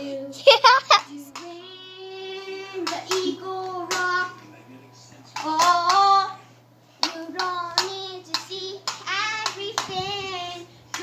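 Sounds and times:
child singing: 0.0 - 0.4, 1.0 - 4.4, 5.4 - 6.4, 7.0 - 11.0.

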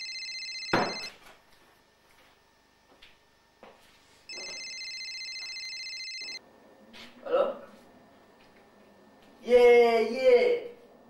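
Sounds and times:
phone ringing high trill: 0.0 - 1.1, 4.3 - 6.4.

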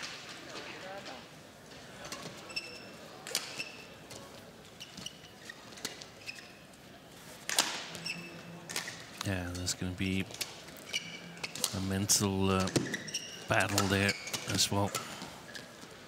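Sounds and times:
shoes squeaking on court: 2.1 - 3.9, 4.7 - 6.7, 10.8 - 11.4, 12.6 - 15.8.

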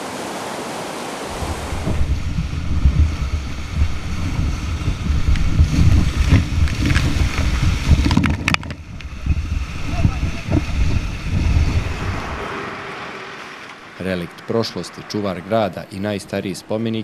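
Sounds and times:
rapids rushing: 0.0 - 17.0
wind buffeting microphone: 1.3 - 17.0.

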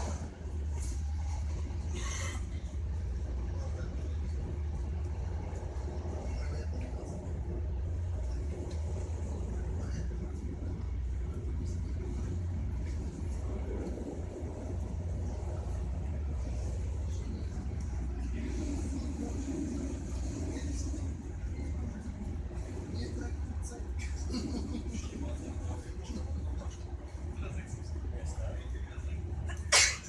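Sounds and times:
moving train rumble: 0.0 - 30.0.

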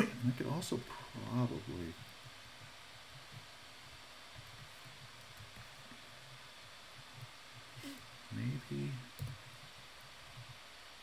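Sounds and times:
person mumbling: 0.0 - 0.4
faint steady hiss: 0.0 - 11.0.

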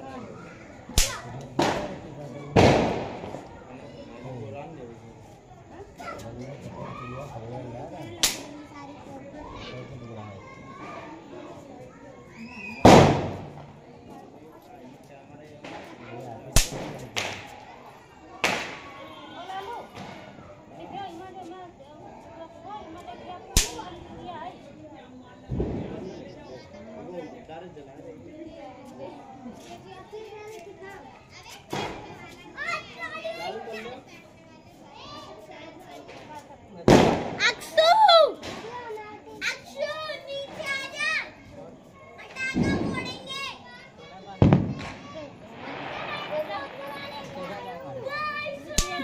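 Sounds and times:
children shouting and chattering: 0.0 - 49.0
faint background voices: 0.0 - 49.0
sharp loud crack: 1.0 - 1.9, 2.6 - 3.4, 8.2 - 8.5, 12.8 - 13.7, 36.9 - 37.4
sharp bangs: 2.6 - 3.4, 12.8 - 13.7, 36.9 - 37.4, 44.4 - 47.4.

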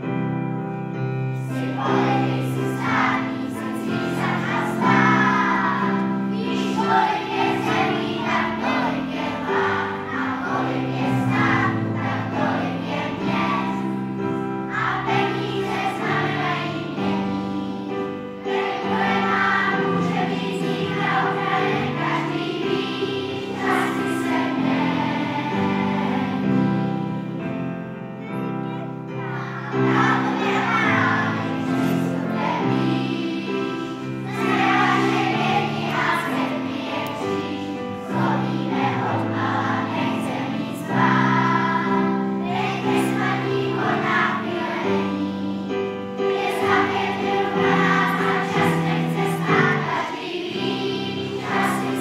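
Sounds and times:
children's choir singing: 0.0 - 52.0.

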